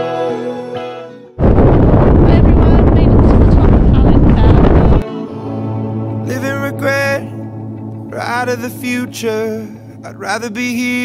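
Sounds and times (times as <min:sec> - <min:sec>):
music: 0:00.0 - 0:01.4, 0:02.3 - 0:11.0
wind buffeting microphone: 0:01.4 - 0:05.0.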